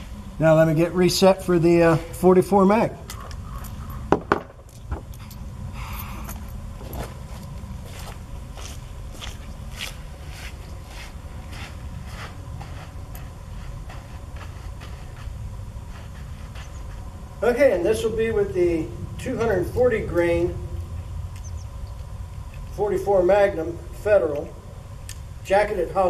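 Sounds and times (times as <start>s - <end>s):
steady low rumble: 0.0s - 26.0s
footsteps: 3.1s - 17.4s.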